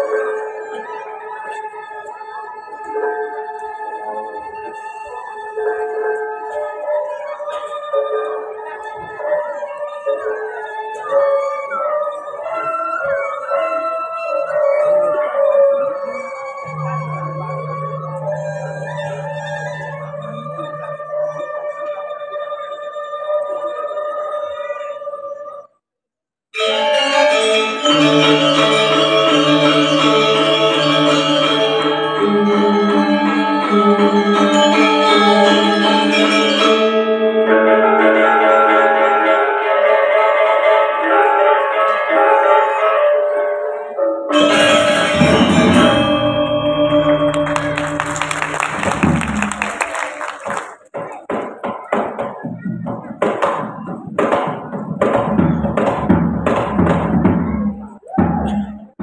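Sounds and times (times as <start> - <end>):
ringing bronze metallophone tones: 26.6 - 38.2, 44.3 - 49.1.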